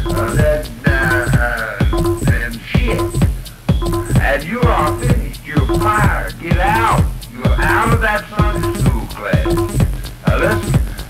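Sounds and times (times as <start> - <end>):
pitch-swooping vocal sample: 0.0 - 3.2
steady kick drum: 0.0 - 11.0
techno music: 0.0 - 11.0.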